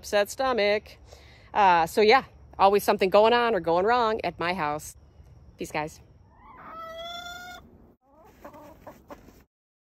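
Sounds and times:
chicken calling: 6.2s - 9.3s
chicken clucking: 6.3s - 9.5s.

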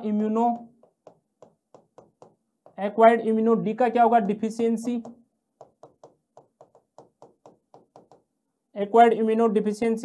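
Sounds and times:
marker pen writing on paper: 0.6s - 2.9s, 4.2s - 8.3s.

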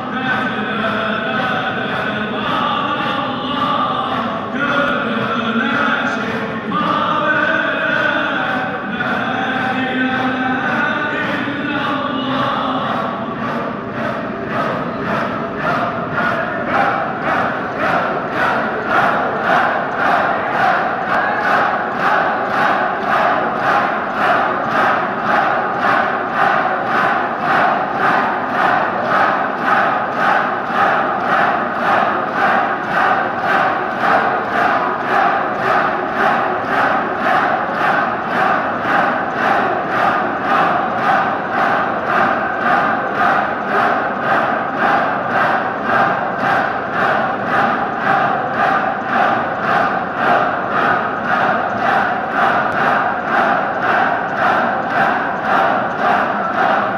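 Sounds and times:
group of voices chanting: 0.0s - 56.9s.

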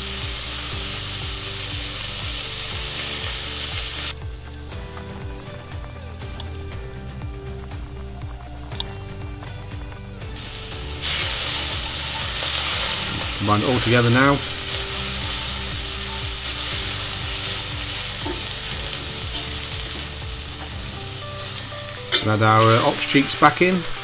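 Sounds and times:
soft background music: 0.0s - 24.0s
vegetables sizzling in oil: 0.0s - 24.0s.

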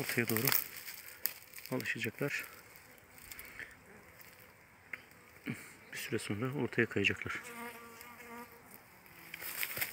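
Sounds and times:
honeybees buzzing: 0.0s - 9.9s.

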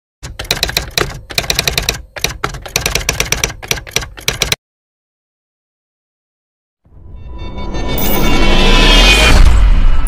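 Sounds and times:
typewriter key strikes: 0.2s - 4.6s.

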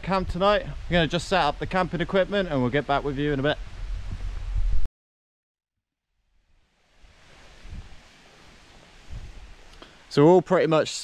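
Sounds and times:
soft steady hiss: 0.0s - 4.9s, 6.3s - 11.0s
wind rumble on microphone: 0.0s - 4.9s, 7.0s - 8.1s, 9.0s - 9.7s.

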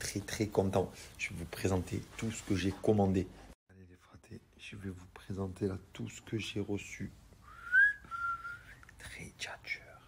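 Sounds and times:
person whistling: 7.4s - 8.8s.

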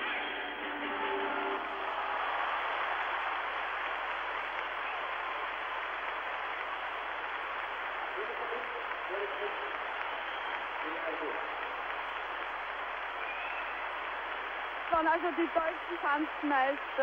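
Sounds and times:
audience applauding: 0.4s - 17.0s.

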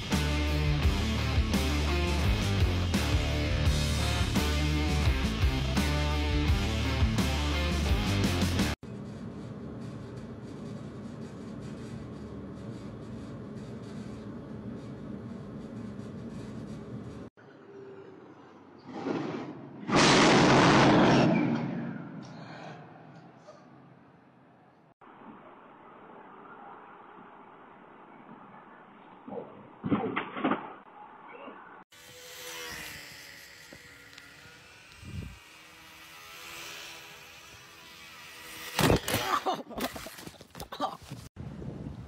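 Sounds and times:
loud boom: 19.0s - 22.7s
model airplane motor buzzing: 31.9s - 39.2s.

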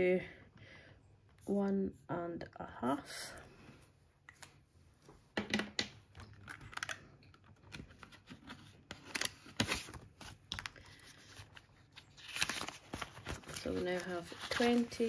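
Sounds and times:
plastic pocket and banknotes crinkling: 6.2s - 15.0s.

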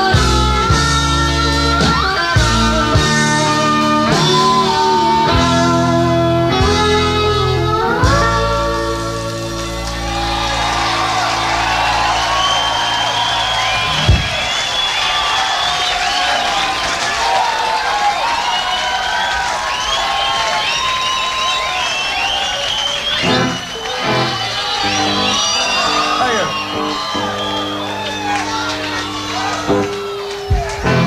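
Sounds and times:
rock band closing chord: 0.0s - 14.9s
audience cheering and whistling: 2.0s - 7.0s, 7.8s - 31.0s.

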